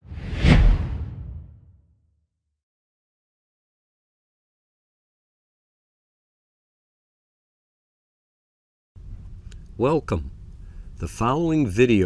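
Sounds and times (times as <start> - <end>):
whoosh with deep boom: 0.0 - 1.8.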